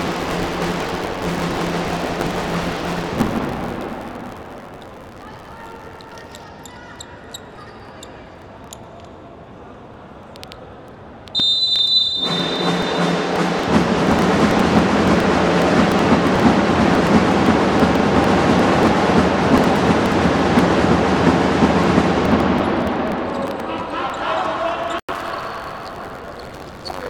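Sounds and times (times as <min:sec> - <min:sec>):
loud crowd noise: 0:00.0 - 0:27.0
referee's whistle: 0:11.4 - 0:13.6.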